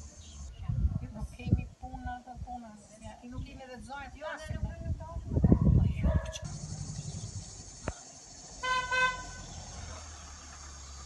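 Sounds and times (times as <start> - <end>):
car horn toot: 8.6 - 9.5.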